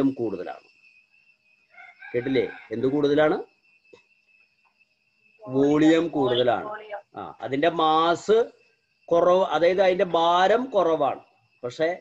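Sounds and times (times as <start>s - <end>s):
rooster crowing: 1.7s - 3.2s.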